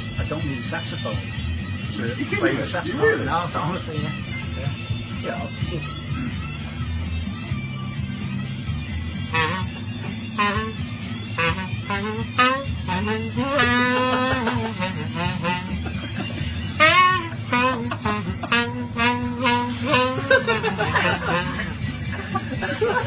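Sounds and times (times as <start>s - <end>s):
background music with guitar: 0.0s - 23.0s
man imitating saxophone: 9.2s - 22.0s.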